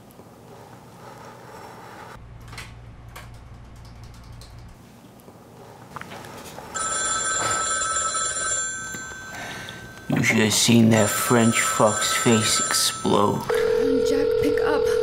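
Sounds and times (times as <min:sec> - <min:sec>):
telephone ringing: 0:06.7 - 0:15.0.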